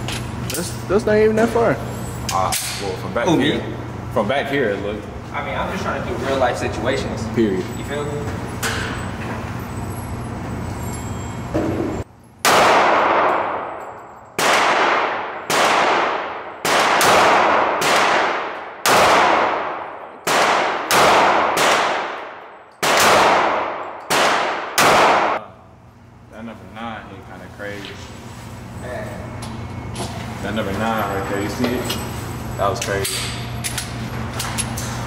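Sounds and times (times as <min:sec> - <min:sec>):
steady background hum: 0:00.0 - 0:35.0
handgun shots echoing indoors: 0:12.4 - 0:25.4.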